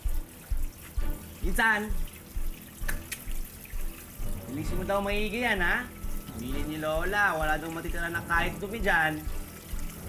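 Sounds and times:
hose water splashing on plastic: 0.0s - 10.0s
sharp clicks: 2.8s - 3.4s.

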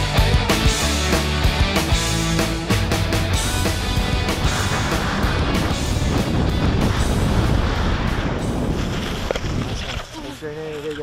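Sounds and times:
rock music: 0.0s - 8.7s.

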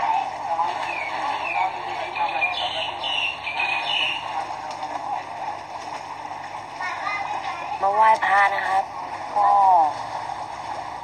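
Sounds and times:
people's voices: 0.0s - 10.1s
water splashing and churning: 0.0s - 11.0s.

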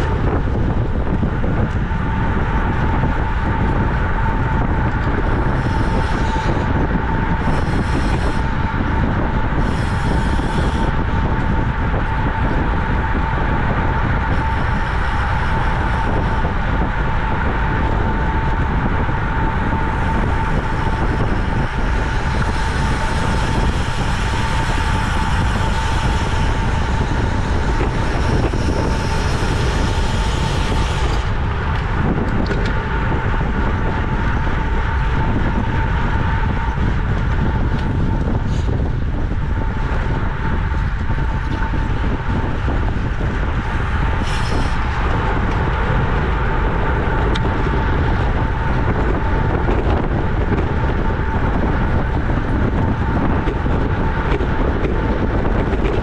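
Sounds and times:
steady hum: 0.0s - 56.0s
tyre and road noise: 0.0s - 56.0s
wind rushing over microphone: 0.0s - 56.0s.

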